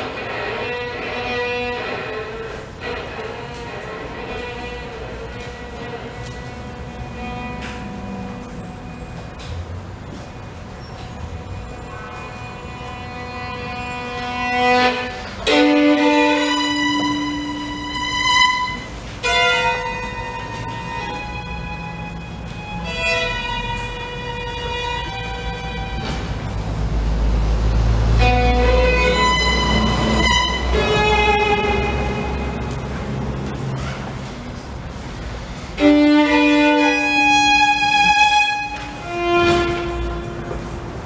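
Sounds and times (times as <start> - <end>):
violin chord bowed: 0.0 - 33.8, 34.9 - 41.0.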